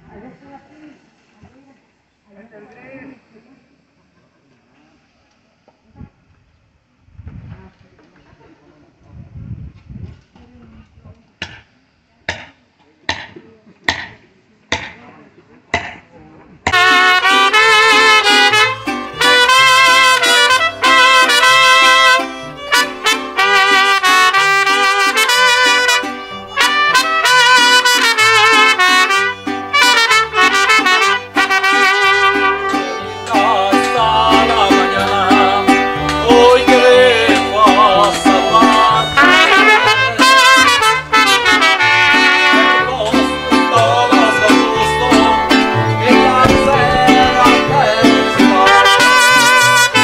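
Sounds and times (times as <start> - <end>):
mariachi band playing: 16.7 - 50.0.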